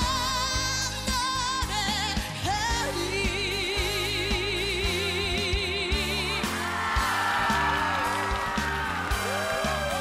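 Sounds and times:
bass: 0.0 - 10.0
drum beat: 6.8 - 10.0.

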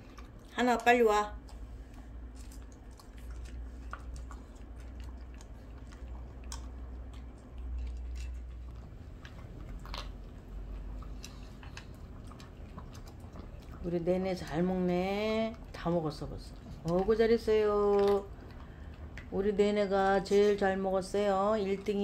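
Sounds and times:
dogs crunching dry food: 0.0 - 22.0
low steady hum: 0.0 - 22.0.

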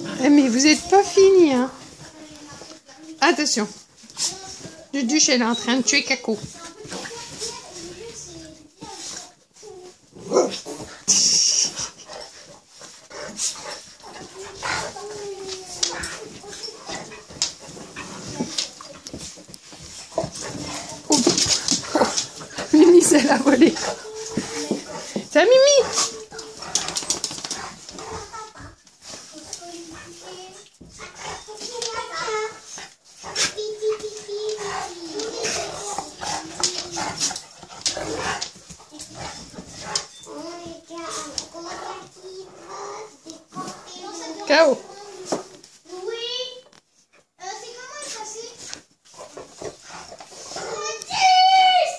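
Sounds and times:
scuffling and bedding rustling: 0.0 - 51.9.

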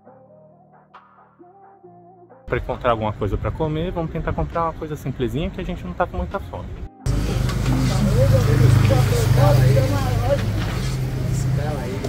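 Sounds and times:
indistinct voices talking: 2.5 - 12.0.

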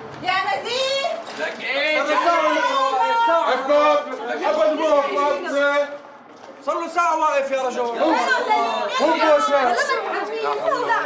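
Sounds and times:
voices talking over one another: 0.4 - 11.0.

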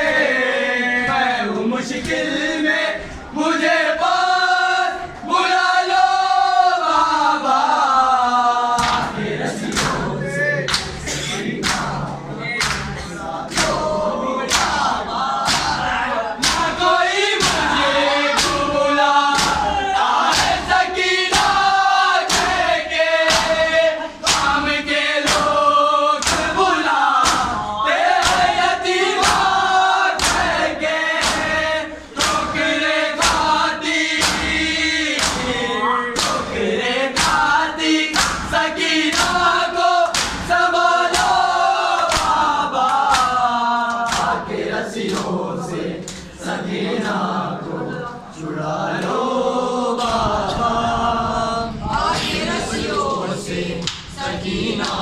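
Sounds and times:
men chanting in unison: 0.0 - 55.0.

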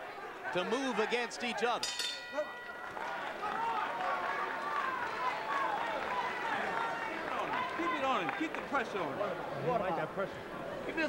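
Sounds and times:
crowd hubbub: 0.0 - 11.0
boxing ring bell ringing: 1.8 - 3.8.

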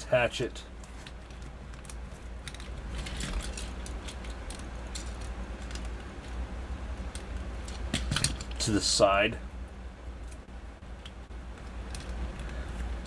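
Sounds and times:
low steady hum: 0.0 - 13.0
plastic toy parts clicking: 0.9 - 6.4, 11.0 - 12.5.

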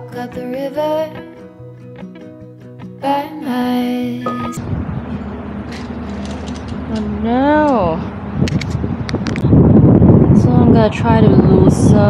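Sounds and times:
wind noise on microphone: 4.6 - 12.0.

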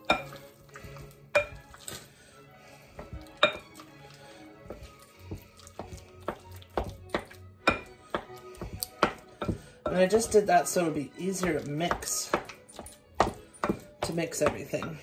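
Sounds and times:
faint music: 0.0 - 15.0.

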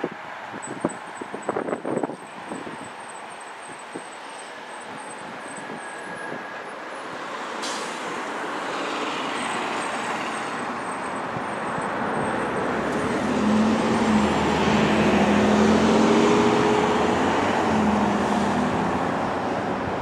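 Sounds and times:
road traffic tyre and engine noise: 0.0 - 20.0
vehicle engine hum: 8.8 - 20.0.

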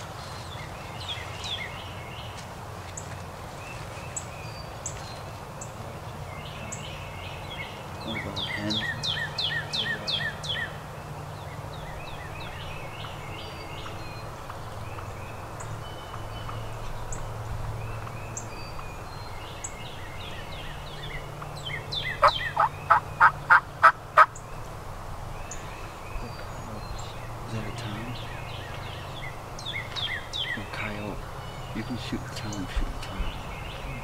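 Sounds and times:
turkey hens yelping: 21.4 - 24.4.

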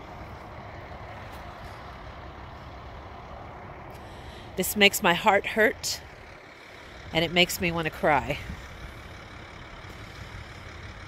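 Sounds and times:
distant highway traffic: 0.0 - 11.0.

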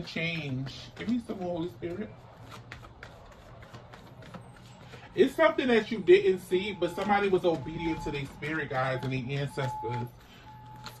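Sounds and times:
cards shuffling: 0.0 - 11.0.

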